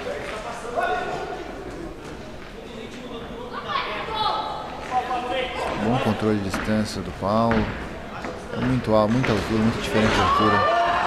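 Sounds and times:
loud shout: 10.0 - 11.0.

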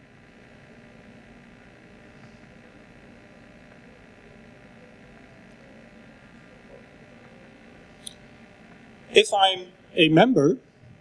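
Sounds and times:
faint hiss and electrical hum: 0.0 - 11.0.

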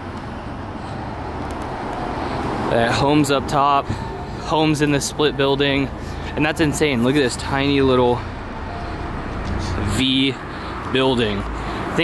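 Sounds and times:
road traffic rushing: 0.0 - 12.0.

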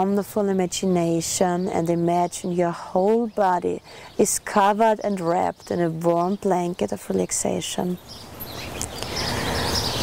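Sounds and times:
faint bird chirps: 7.2 - 10.0.

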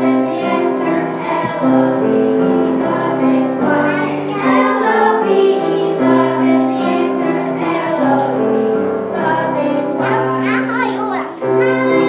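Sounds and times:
group singing together: 0.0 - 10.6, 11.4 - 12.0
instrumental accompaniment held notes: 0.0 - 12.0.

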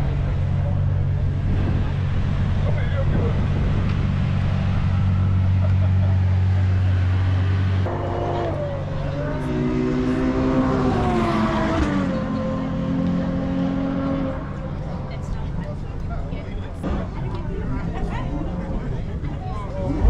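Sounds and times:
sports car engine revving: 0.0 - 15.3.

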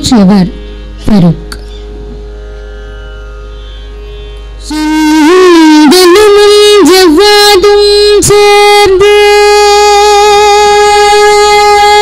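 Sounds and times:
low electrical hum: 0.0 - 12.0
steady drone: 0.0 - 12.0.

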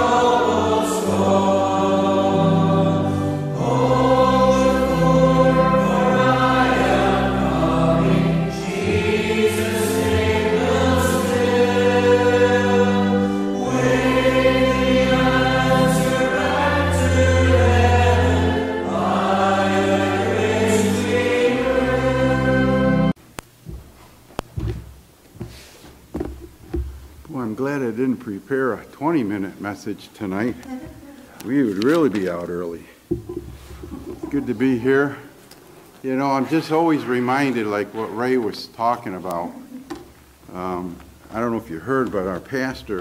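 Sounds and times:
choir singing sustained chords: 0.0 - 23.2.

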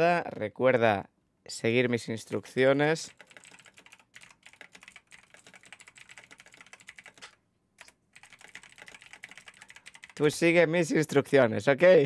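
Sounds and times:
rapid typing on keyboard: 2.3 - 10.5.

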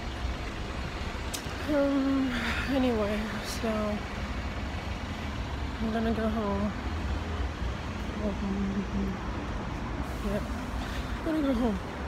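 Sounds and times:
low rumble of traffic: 0.0 - 12.0
woman's voice: 1.5 - 4.2, 5.7 - 6.9, 8.0 - 9.3, 10.1 - 12.0.

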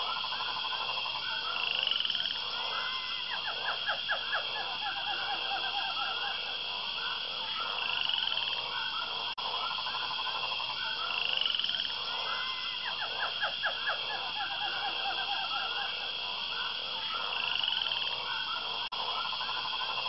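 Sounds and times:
frogs calling: 0.0 - 20.0
high insect drone: 0.0 - 20.0.

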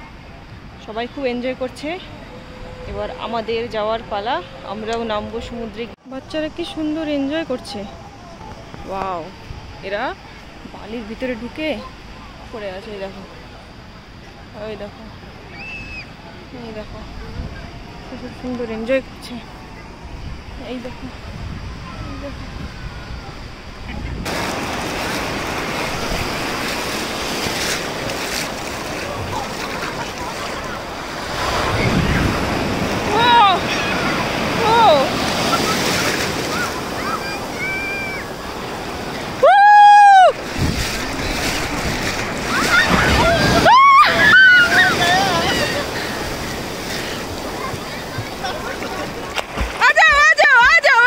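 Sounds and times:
wind on microphone: 16.9 - 49.8
sea surf breaking: 17.2 - 51.0
seawater splashing around waders: 23.9 - 51.0.

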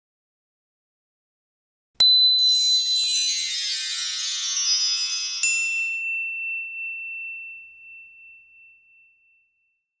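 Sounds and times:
high chime ringing: 2.0 - 9.6.

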